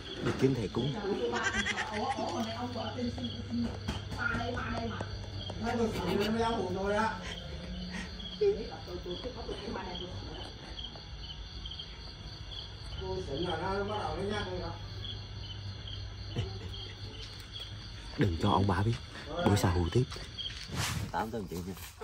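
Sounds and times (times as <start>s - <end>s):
crickets chirping: 0.0s - 22.0s
man speaking: 18.2s - 20.2s.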